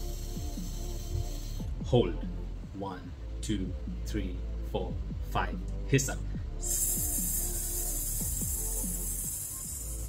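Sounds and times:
background music: 0:00.0 - 0:10.0
man hissing breath out: 0:06.6 - 0:10.0.

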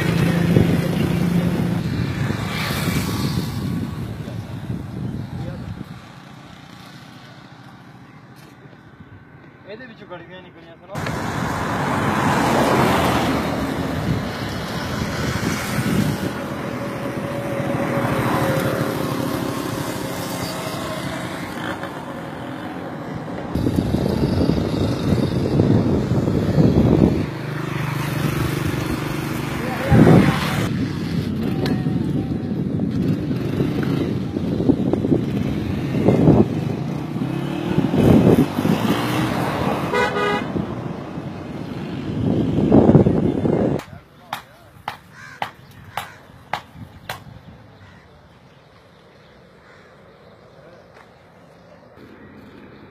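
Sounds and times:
wind noise: 0:00.0 - 0:07.0, 0:11.0 - 0:19.3, 0:23.4 - 0:48.0
road traffic: 0:00.0 - 0:52.9
vehicles passing: 0:00.0 - 0:52.9
car horn toot: 0:39.9 - 0:40.6.

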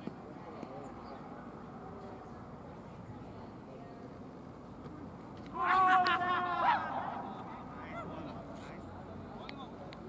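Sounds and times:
players yelling: 0:05.5 - 0:08.5.

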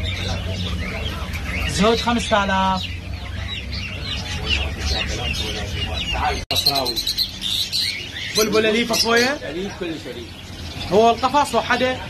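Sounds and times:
chicks cheeping: 0:00.0 - 0:12.0.

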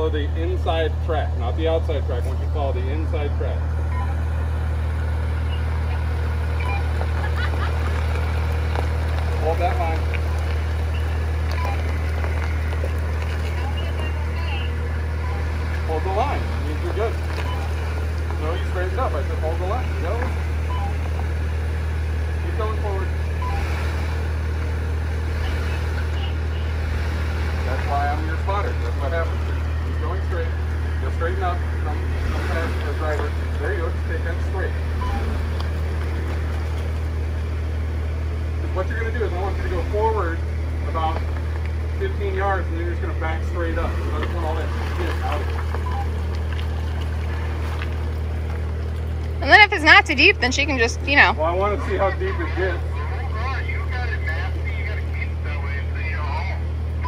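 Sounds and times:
indistinct voices: 0:00.0 - 0:37.5, 0:38.5 - 0:48.7, 0:49.3 - 0:57.0
engine low drone: 0:00.0 - 0:57.0.

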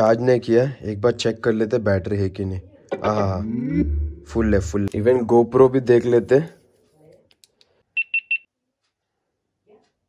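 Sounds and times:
short high beeps: 0:08.0 - 0:08.5.

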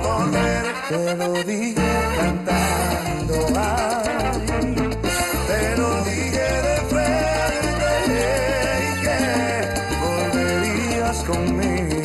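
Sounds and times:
live salsa band: 0:00.0 - 0:12.0.

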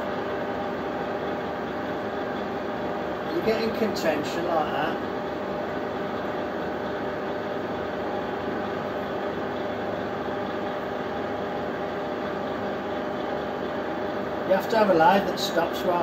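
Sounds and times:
metal lathe humming: 0:00.0 - 0:16.0.

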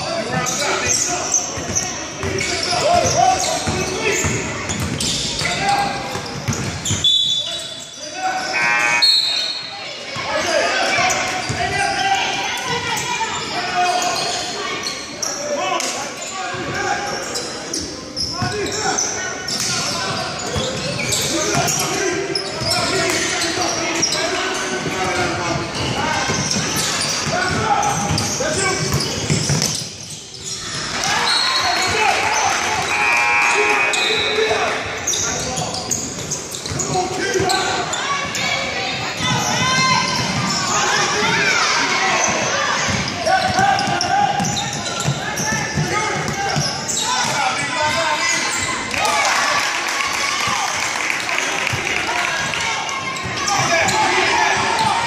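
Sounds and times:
players and spectators voices: 0:00.0 - 0:55.0.

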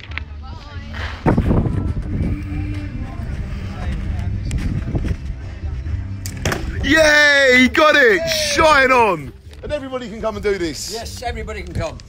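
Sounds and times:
wind rumble on microphone: 0:00.0 - 0:06.2
arrow striking target: 0:06.2 - 0:06.8.

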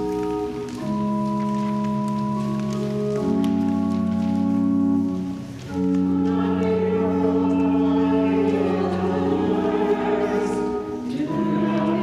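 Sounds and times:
church organ: 0:00.0 - 0:12.0
congregation singing a hymn: 0:05.7 - 0:12.0.

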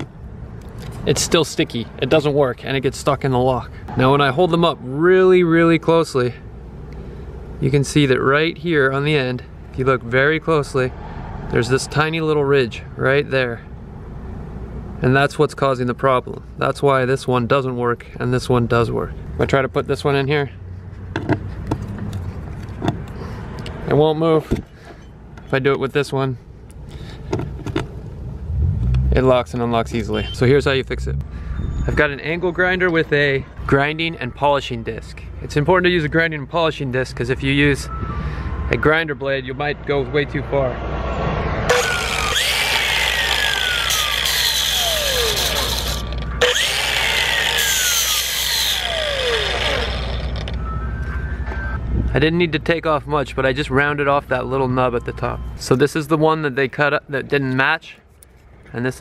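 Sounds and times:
angle grinder whine: 0:41.7 - 0:51.1.

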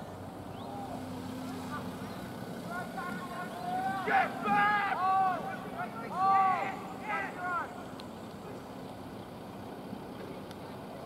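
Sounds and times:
faint voices calling out: 0:00.4 - 0:11.0
person shouting: 0:02.7 - 0:07.7.

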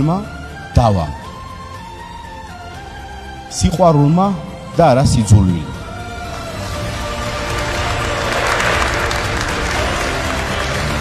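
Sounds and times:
background music: 0:00.0 - 0:11.0
audience applauding: 0:06.7 - 0:11.0.

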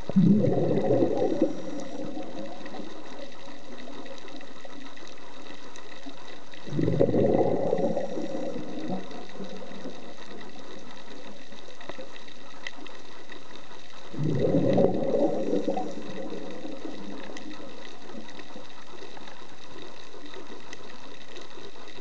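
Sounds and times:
gurgling exhaust bubbles: 0:00.0 - 0:04.0, 0:06.6 - 0:11.3, 0:14.1 - 0:18.3
steady low hiss: 0:00.0 - 0:22.0.

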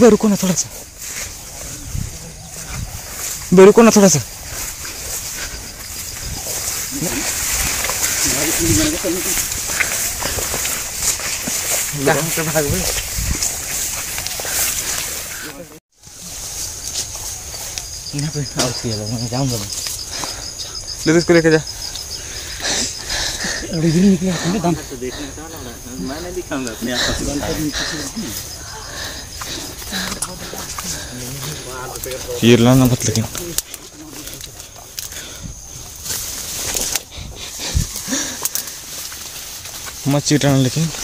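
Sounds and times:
footsteps in undergrowth: 0:00.0 - 0:41.0
insects chirping: 0:00.0 - 0:41.0
rustling of dense undergrowth: 0:00.0 - 0:41.0.

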